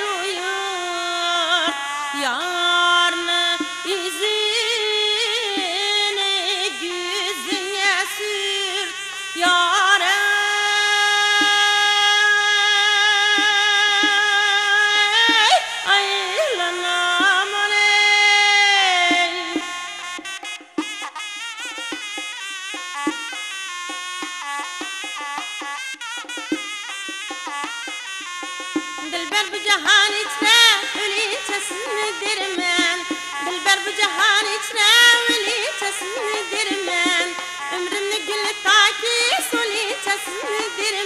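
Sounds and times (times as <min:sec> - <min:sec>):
woman singing with trills: 0:00.0 - 0:20.6, 0:29.0 - 0:41.0
instrumental accompaniment: 0:00.0 - 0:41.0.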